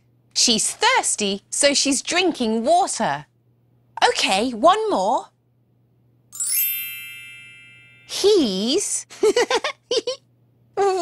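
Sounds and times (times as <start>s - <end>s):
bright bell-like chime: 6.4s - 8.6s.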